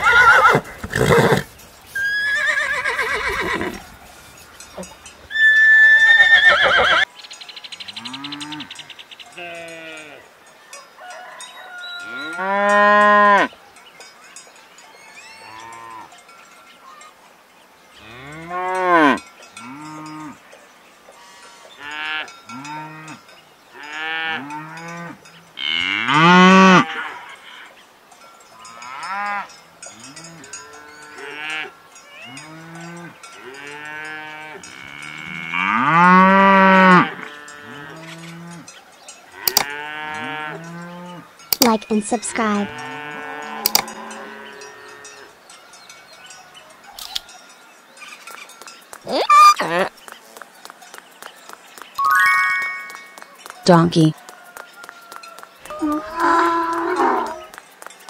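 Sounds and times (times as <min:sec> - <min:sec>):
cattle mooing: 0:55.9 - 0:57.5.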